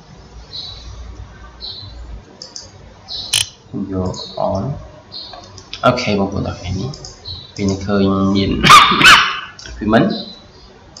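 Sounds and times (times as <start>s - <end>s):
dog barking: 8.6s - 9.6s.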